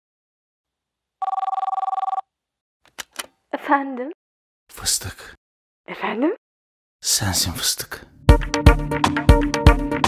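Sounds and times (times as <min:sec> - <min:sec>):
telephone ringing: 0:01.2 - 0:02.3.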